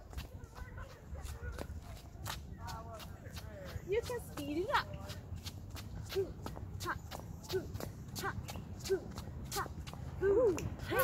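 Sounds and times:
shoes tapping on concrete: 0:00.0 - 0:11.0.

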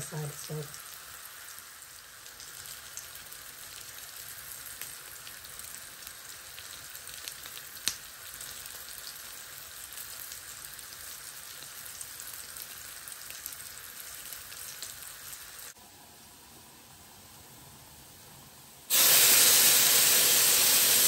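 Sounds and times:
patties sizzling in oil: 0:00.0 - 0:21.0.

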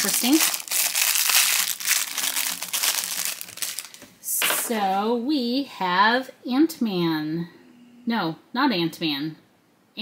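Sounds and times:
plastic wrapper crinkling: 0:00.0 - 0:04.2.

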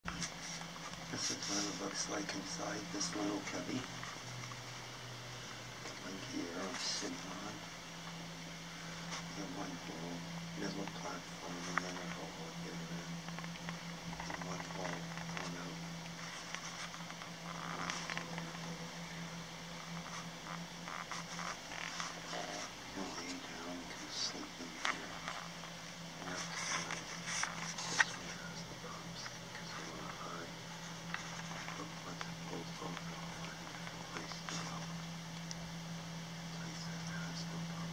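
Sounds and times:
steady low hum: 0:00.0 - 0:37.9
faint muffled voices: 0:01.1 - 0:03.9, 0:05.8 - 0:07.6, 0:08.9 - 0:13.2, 0:14.0 - 0:15.8, 0:17.5 - 0:25.5, 0:26.2 - 0:30.6, 0:31.2 - 0:35.1, 0:36.4 - 0:37.9.

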